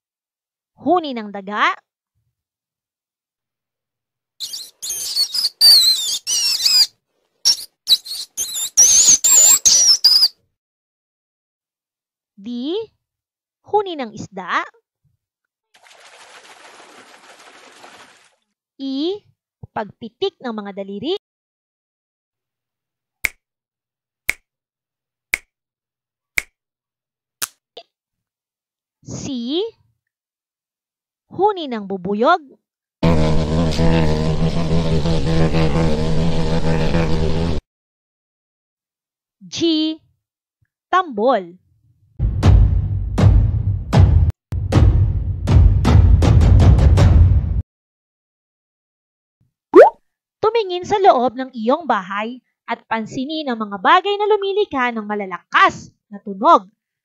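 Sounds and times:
mouse squeaking: 4.4s - 10.3s
finger snaps: 23.2s - 23.4s, 24.3s - 24.5s, 25.3s - 25.5s, 26.4s - 26.6s.

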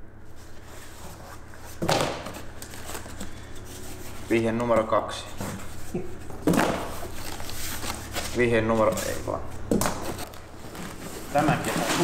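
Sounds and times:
paper and cardboard rustling: 0.4s - 12.0s.

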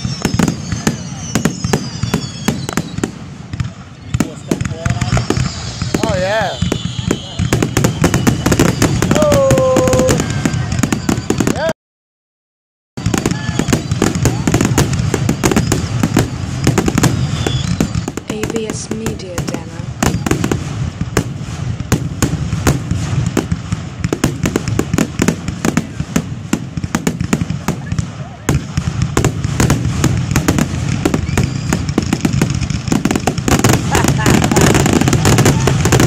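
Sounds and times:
fireworks bangs and crackles: 0.0s - 11.7s, 13.0s - 36.0s.

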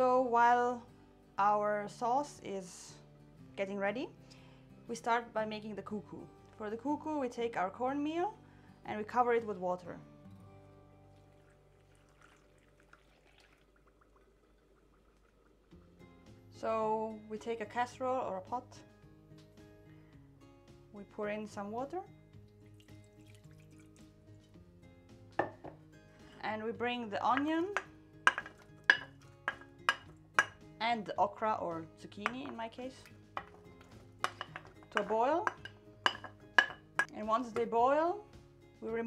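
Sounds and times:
water pouring into bowl: 11.1s - 16.0s, 22.6s - 24.2s
utensil knocking on pot rim: 25.4s - 25.8s, 27.3s - 30.6s, 32.2s - 37.7s.

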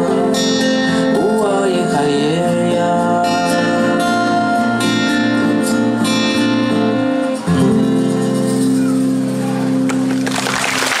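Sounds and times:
audience clapping: 9.8s - 11.0s.

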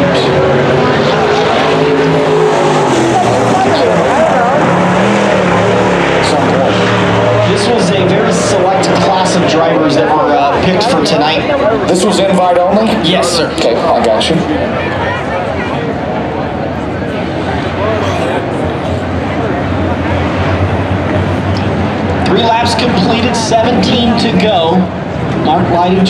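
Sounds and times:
race car engines passing: 0.0s - 26.0s.

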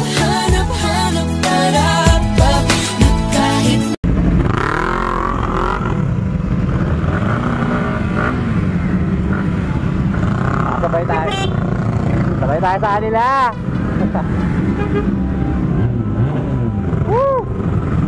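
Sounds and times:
background music: 0.0s - 4.0s
motorcycle engines running: 4.0s - 18.0s.

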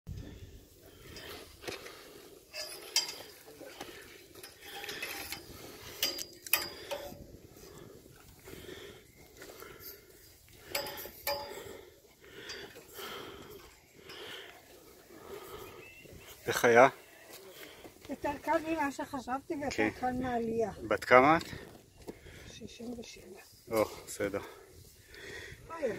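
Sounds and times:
clanks on metal ladder rungs: 1.0s - 7.4s, 10.6s - 14.5s.

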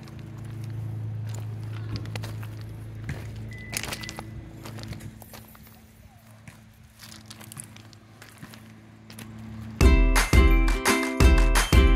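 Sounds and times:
footsteps on gravel: 0.0s - 10.0s.

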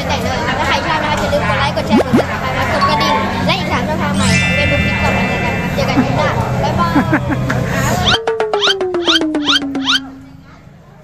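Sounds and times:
voices: 0.0s - 8.2s
downward sliding tone: 1.9s - 7.0s.

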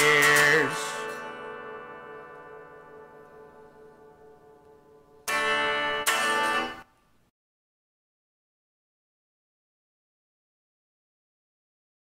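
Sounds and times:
electric guitar chords ringing: 0.0s - 6.9s.

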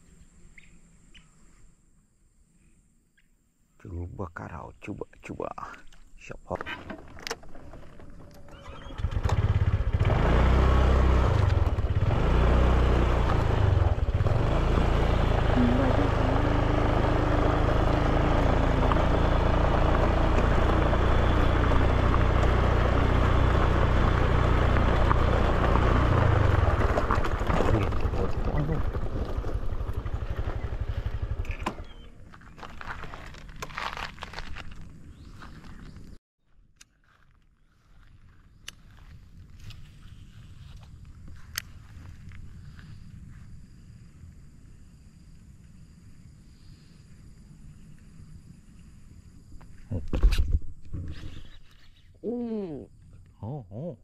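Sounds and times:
scooter engine running: 6.7s - 34.6s
wind rumble on microphone: 38.0s - 51.6s.

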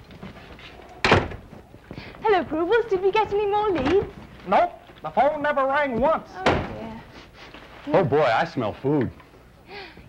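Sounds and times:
door slamming: 1.0s - 1.5s, 6.4s - 6.9s.

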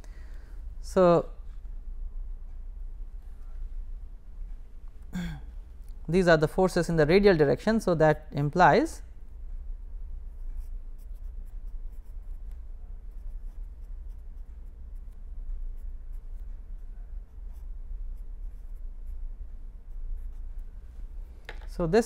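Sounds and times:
steady low hum: 0.0s - 22.0s
pen scratching on paper: 10.3s - 20.7s.

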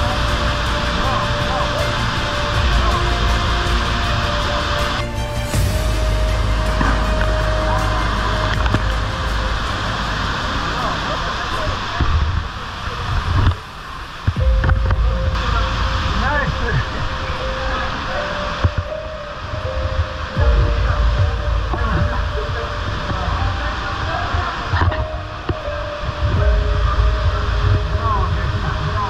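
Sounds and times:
background music: 0.0s - 11.5s, 14.3s - 29.0s
waterfall roaring: 0.0s - 29.0s.

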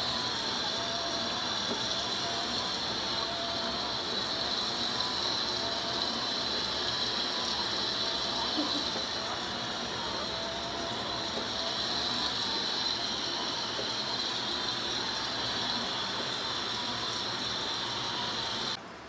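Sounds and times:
faint steady tones: 0.0s - 19.0s
steady high hiss: 0.0s - 19.0s.

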